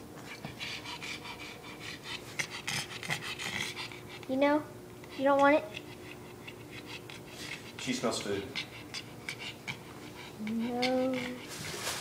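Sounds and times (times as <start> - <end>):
dog panting: 0.2 - 12.0.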